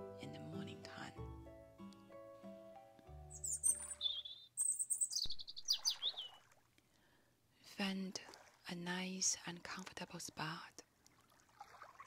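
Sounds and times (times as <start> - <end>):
soft music: 0.0 - 5.1
songbirds chirping: 3.0 - 6.6.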